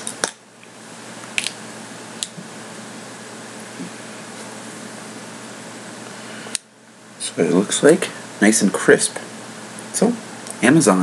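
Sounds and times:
fan-like room hum: 0.0 - 11.0.

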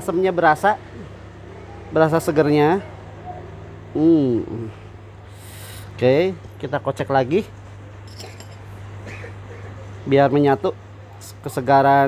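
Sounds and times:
steady low hum: 0.0 - 12.0
metal spoon clinking on glass: 8.0 - 8.7.

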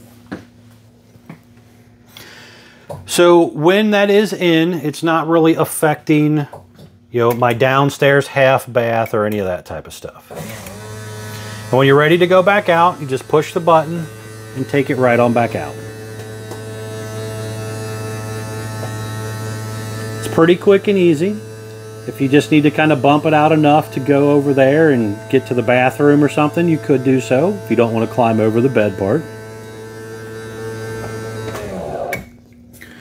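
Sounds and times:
electric motor humming: 10.3 - 32.4.

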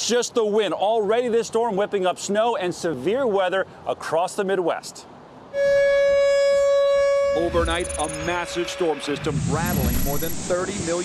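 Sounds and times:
storm warning siren steady tone: 5.5 - 10.3.

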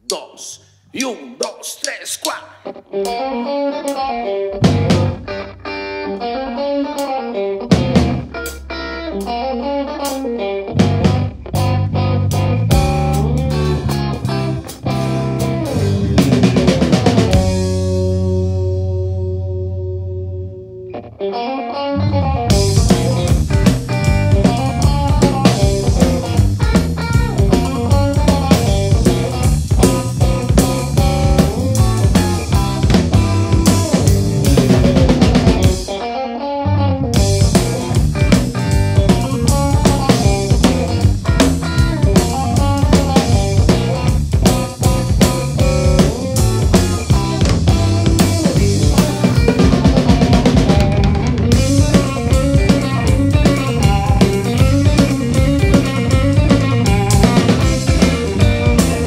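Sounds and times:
blues-rock band playing: 1.6 - 59.0
electric guitar riff: 1.6 - 59.0.

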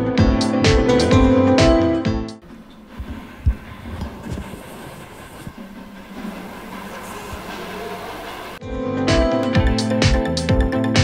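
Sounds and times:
steady rumbling noise: 2.4 - 8.6.

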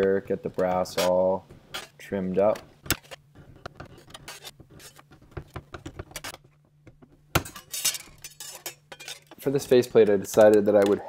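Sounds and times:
metal shear snipping sheet metal: 7.4 - 10.9.

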